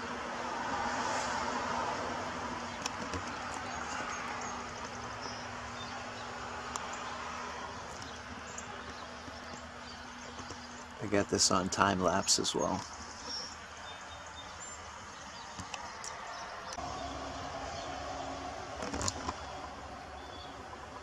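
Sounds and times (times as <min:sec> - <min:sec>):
outdoor background rush: 0:00.0 - 0:21.0.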